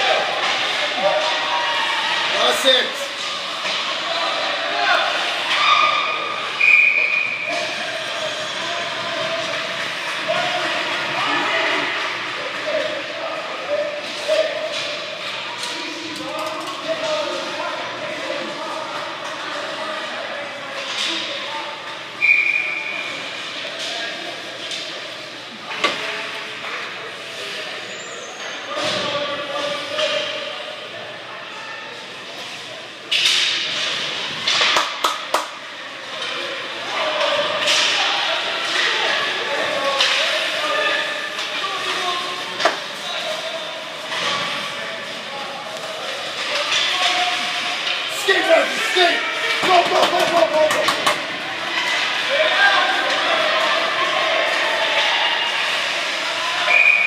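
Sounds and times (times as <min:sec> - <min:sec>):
spectators chattering in echoing hall: 0:00.0 - 0:57.0
puck and sticks knocking boards: 0:34.4 - 0:35.6, 0:49.5 - 0:51.3.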